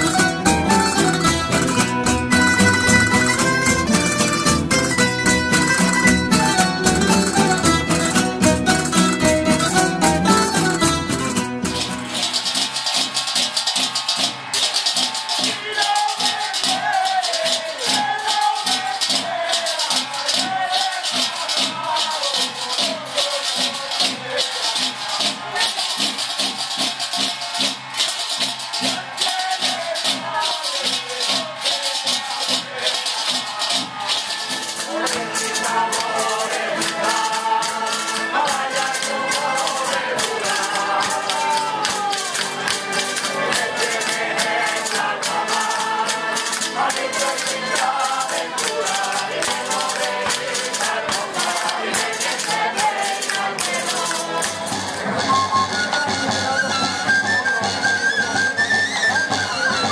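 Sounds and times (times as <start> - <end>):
strummed and plucked guitars: 0.0 - 30.7, 32.2 - 59.9
men singing loudly: 12.1 - 56.8.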